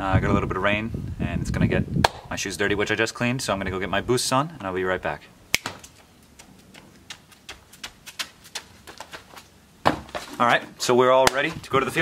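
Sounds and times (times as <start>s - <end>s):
jogging footsteps on pavement: 5.6s - 10.6s.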